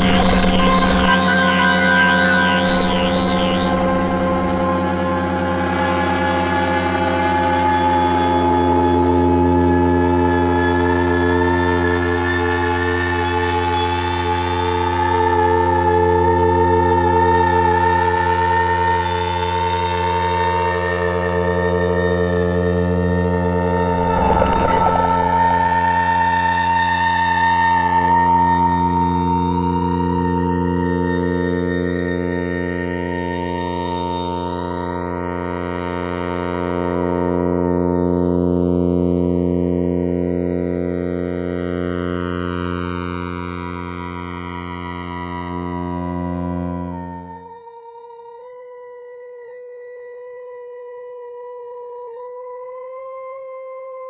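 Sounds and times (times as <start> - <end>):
ambient synthesizer music: 0.0 - 7.6, 22.7 - 26.8
high wavering tone: 0.0 - 9.6, 21.5 - 27.4
faint falling sweeps: 23.1 - 26.6.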